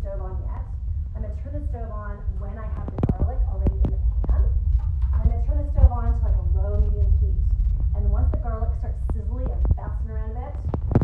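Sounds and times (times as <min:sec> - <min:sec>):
woman talking: 0:00.0 - 0:10.9.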